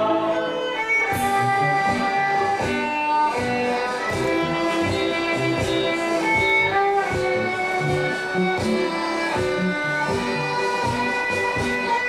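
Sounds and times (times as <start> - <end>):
drums: 0.0 - 12.0
plucked strings: 0.0 - 12.0
violin melody: 0.0 - 12.0
bass line: 1.1 - 12.0.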